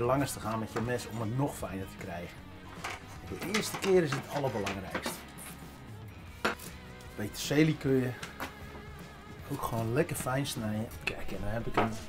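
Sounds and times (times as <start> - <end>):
quiet background music: 0.0 - 12.0
chopping and scraping vegetables: 2.8 - 5.8, 6.4 - 6.8.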